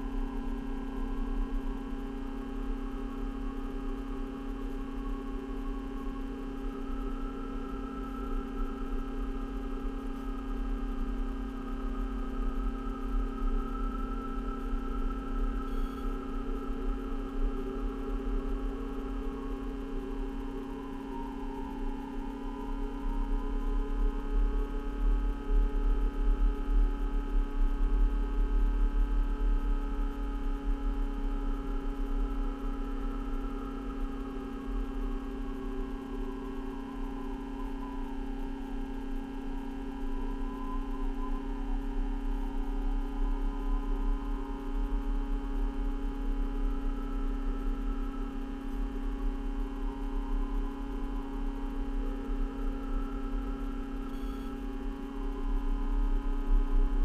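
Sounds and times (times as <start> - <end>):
electrical hum: 0.0 - 57.0.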